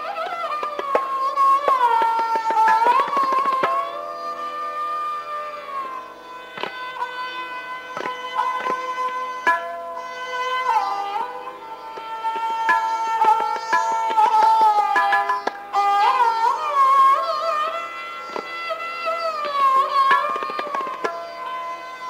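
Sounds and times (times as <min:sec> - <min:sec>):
bowed sarangi melody: 0:00.0 - 0:22.0
tabla strokes: 0:00.0 - 0:22.0.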